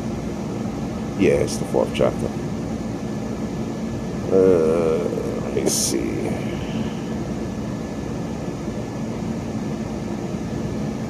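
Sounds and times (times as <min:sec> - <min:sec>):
steady background hum: 0:00.0 - 0:11.0
man saying uh: 0:01.2 - 0:02.3, 0:04.3 - 0:07.0.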